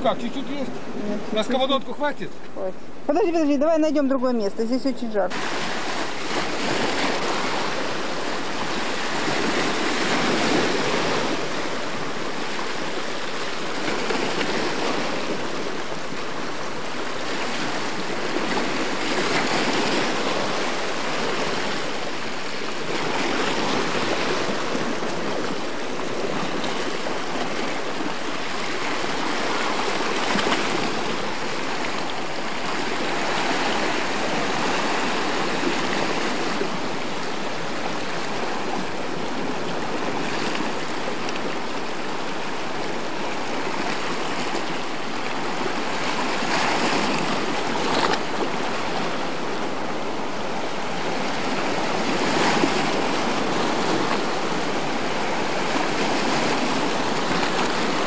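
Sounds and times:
waves washing over rocks: 0.0s - 2.3s, 5.2s - 58.0s.

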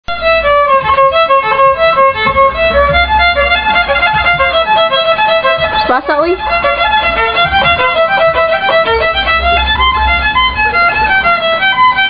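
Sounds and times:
bowed violin melody: 0.0s - 12.0s.

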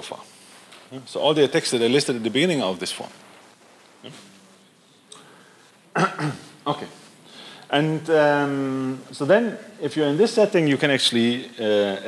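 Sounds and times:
faint room noise: 0.0s - 12.0s
soft breath: 5.2s - 5.8s, 7.2s - 7.7s.

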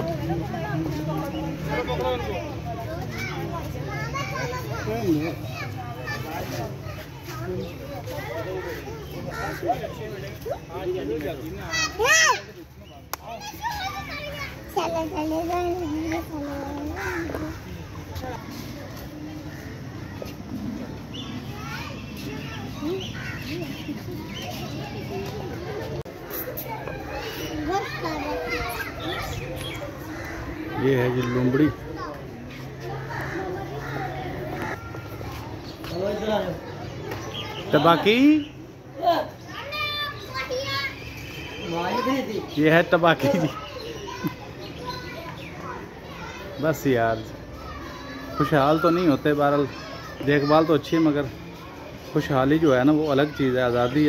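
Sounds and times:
children and adults talking: 0.0s - 54.0s.

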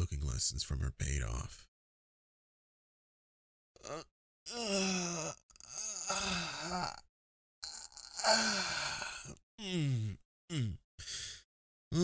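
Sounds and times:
man moaning: 3.8s - 7.0s, 7.6s - 10.8s.

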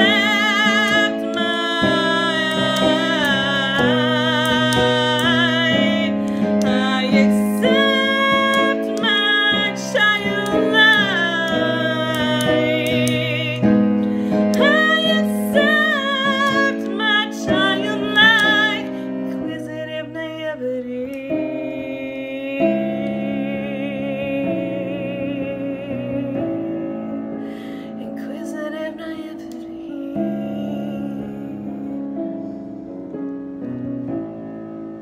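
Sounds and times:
woman singing with vibrato: 0.0s - 32.2s
sustained keyboard chords: 0.0s - 35.0s.

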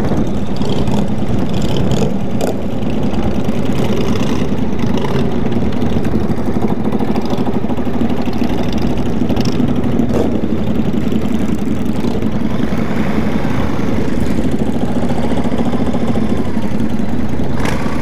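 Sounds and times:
motorcycle engine at low speed: 0.0s - 18.0s
other motorcycles: 0.0s - 18.0s.

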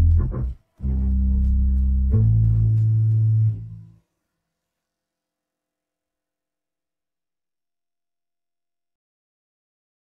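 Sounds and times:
bass line: 0.0s - 4.0s.

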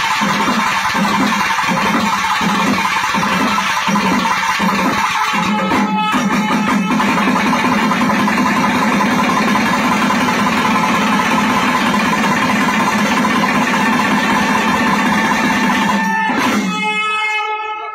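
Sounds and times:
drums beating: 0.0s - 17.1s
reed wind instrument melody: 4.8s - 8.0s, 13.6s - 17.9s.

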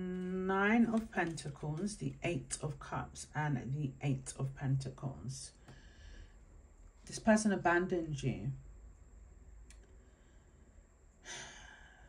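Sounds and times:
faint room hum: 0.0s - 12.0s
person sighing: 11.2s - 12.0s.

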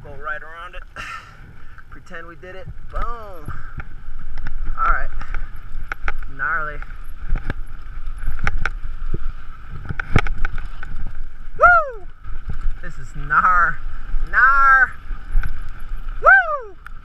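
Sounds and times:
bike clattering over bumps: 0.0s - 17.0s
bike tyres over dirt and stones: 0.0s - 17.0s
rider whooping: 11.4s - 12.3s, 16.0s - 17.0s.

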